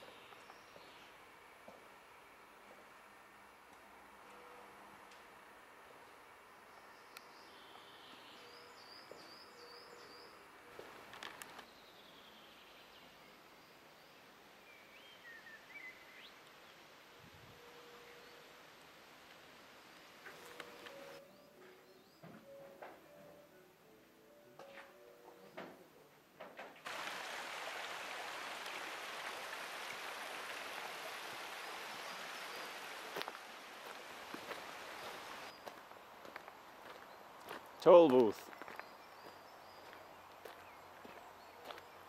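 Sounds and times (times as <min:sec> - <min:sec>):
faint outdoor ambience: 0:00.0 - 0:42.0
bird calls: 0:38.5 - 0:42.0.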